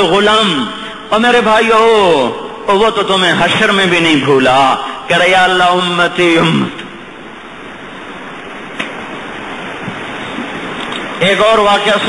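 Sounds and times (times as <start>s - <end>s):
steady rushing background noise: 1.2s - 12.0s
single click: 8.8s - 9.0s.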